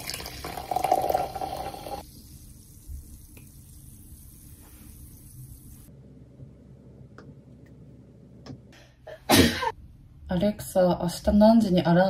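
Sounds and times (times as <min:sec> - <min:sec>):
drink pouring into glass: 0:00.0 - 0:02.0.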